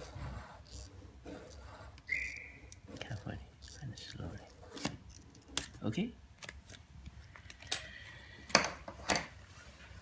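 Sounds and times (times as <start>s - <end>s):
hand tool scraping glue: 0.0s - 5.6s
short high squeak: 2.1s - 2.7s.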